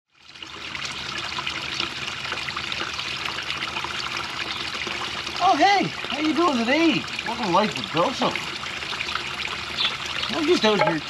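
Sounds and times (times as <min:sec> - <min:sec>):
waterfall trickling over stones: 0:00.1 - 0:11.0.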